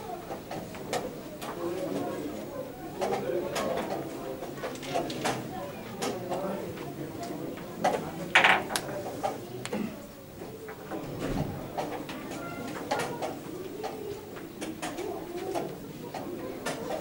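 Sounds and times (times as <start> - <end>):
low murmur of voices: 0.0 - 17.0.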